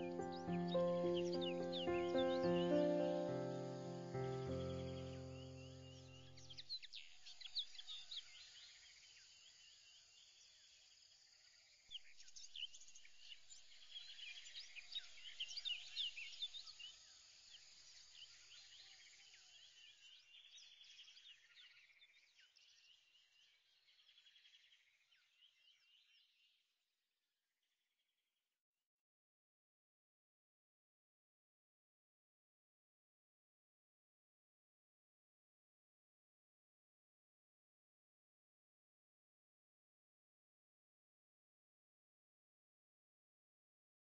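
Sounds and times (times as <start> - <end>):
held music chord: 0.0 - 6.2
birds chirping: 0.0 - 8.3.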